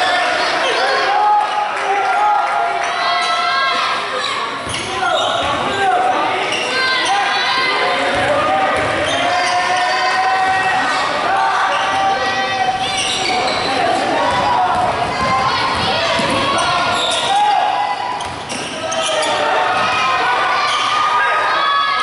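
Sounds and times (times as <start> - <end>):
people calling out: 0.0 - 22.0
basketball bouncing on wooden floor: 8.8 - 9.0, 14.3 - 16.7.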